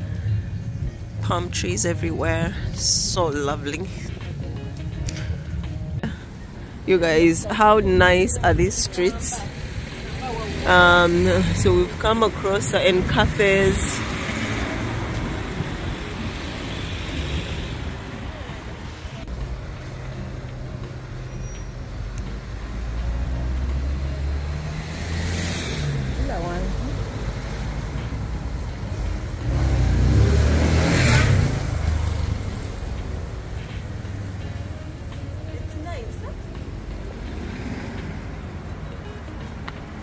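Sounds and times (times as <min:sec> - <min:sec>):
traffic rumble: 0:00.0 - 0:40.0
vehicles passing close: 0:00.0 - 0:40.0.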